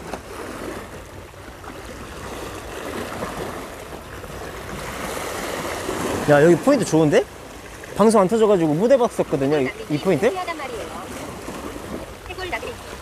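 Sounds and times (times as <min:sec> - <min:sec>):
sea waves breaking on rocks: 0:00.0 - 0:13.0.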